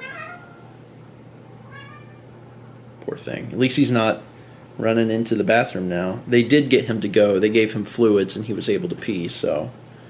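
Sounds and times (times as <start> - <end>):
cat meowing: 0.0 - 0.7, 1.6 - 2.3.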